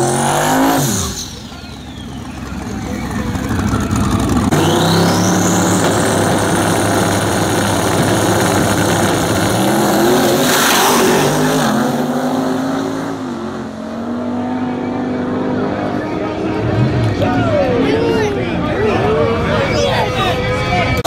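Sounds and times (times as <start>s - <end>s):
drag racing cars accelerating: 0.0s - 19.8s.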